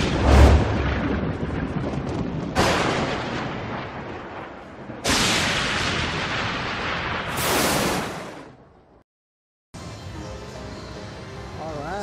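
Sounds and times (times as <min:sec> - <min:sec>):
thunderclap crack and rumble: 0:00.0 - 0:08.9.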